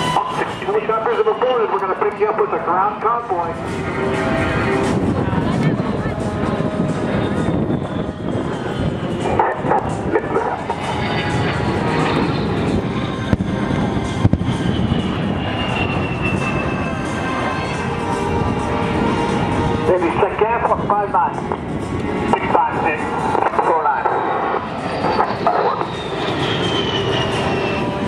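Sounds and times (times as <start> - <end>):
high engine whine: 0.0 - 28.0
jet engines roaring: 0.0 - 28.0.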